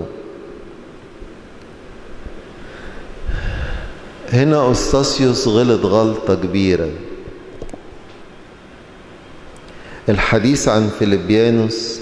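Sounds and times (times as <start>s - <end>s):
microphone hiss: 0.0s - 12.0s
breath into microphone: 2.6s - 4.1s, 9.7s - 10.1s.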